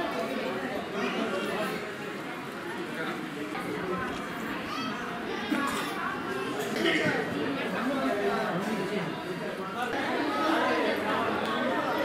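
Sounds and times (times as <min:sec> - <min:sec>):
overlapping chatter of voices: 0:00.0 - 0:12.0.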